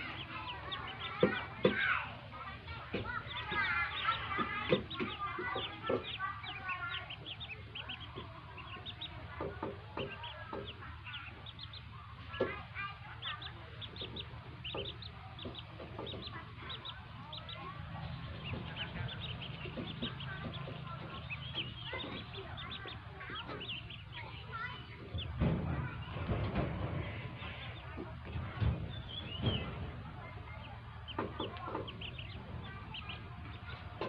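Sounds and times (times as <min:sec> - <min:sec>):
ducklings peeping: 0:00.0 - 0:34.0.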